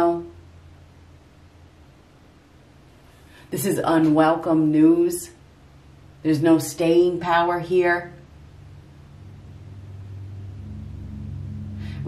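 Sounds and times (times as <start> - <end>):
low rumbling hum: 0.0 - 12.0
higher tone: 8.2 - 12.0.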